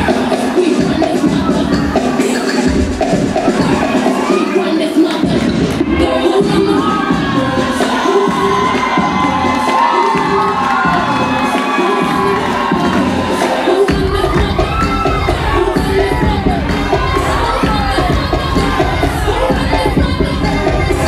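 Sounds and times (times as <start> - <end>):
pop dance track with bass beat: 0.0 - 21.0
crowd cheering and screaming: 1.4 - 21.0.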